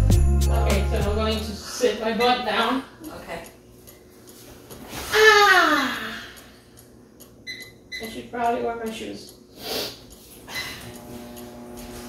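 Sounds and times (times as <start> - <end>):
microwave keypad beeps: 7.4 - 8.3.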